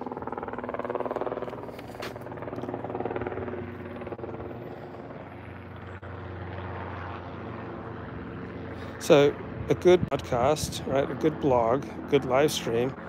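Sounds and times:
engine drone: 0.0 - 13.0.

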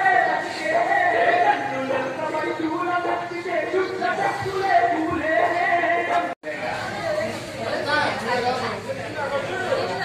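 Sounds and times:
people chattering in reverberant room: 0.0 - 10.0.

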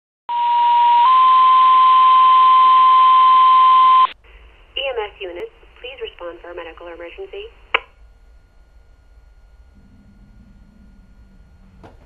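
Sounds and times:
two-tone radio page: 2.2 - 8.0
radio hiss: 4.0 - 8.0
dispatcher voice over radio: 4.8 - 7.6.

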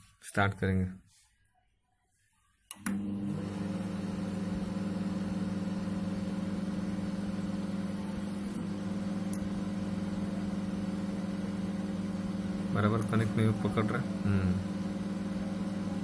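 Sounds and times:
microwave oven humming: 2.8 - 16.0.

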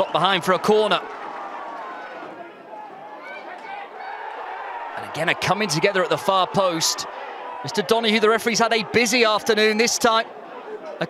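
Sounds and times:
stadium crowd hum of voices: 0.0 - 11.0.

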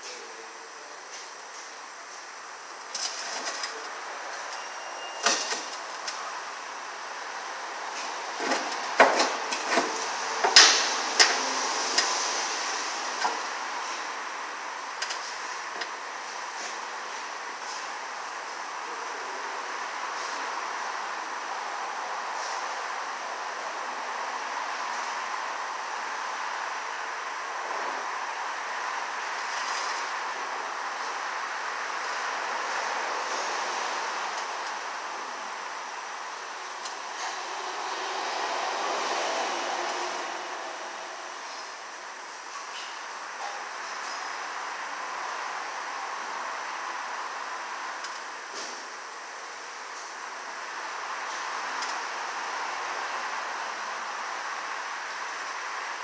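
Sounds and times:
workshop background hiss: 0.0 - 56.0.

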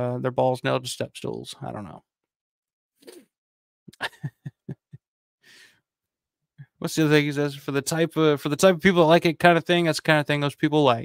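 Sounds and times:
man speaking: 0.0 - 2.0, 6.7 - 11.0.

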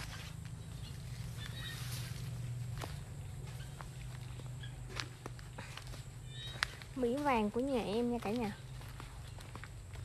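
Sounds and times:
footsteps walking: 0.0 - 10.0
steady low hum: 0.0 - 10.0.

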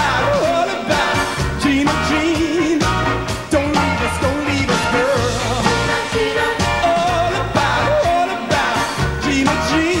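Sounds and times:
live pop band playing: 0.0 - 10.0
steady bass line: 0.0 - 10.0.

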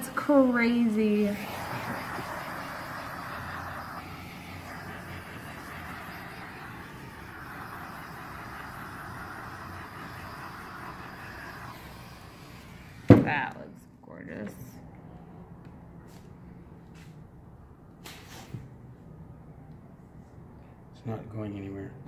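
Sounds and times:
gas torch hissing: 0.0 - 13.8.

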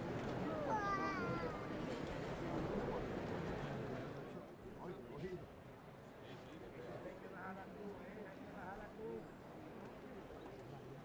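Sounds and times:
murmur of street crowd: 0.0 - 11.0.

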